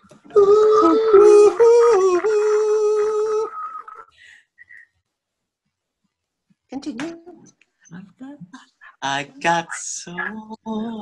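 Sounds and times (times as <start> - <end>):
man singing softly: 9.0 - 11.0.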